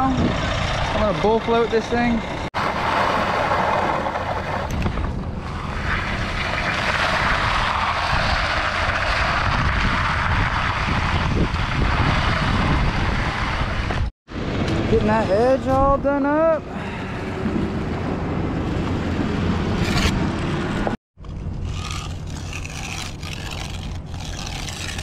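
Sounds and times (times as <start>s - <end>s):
float scraping wet concrete: 0.0s - 14.1s, 18.6s - 25.0s.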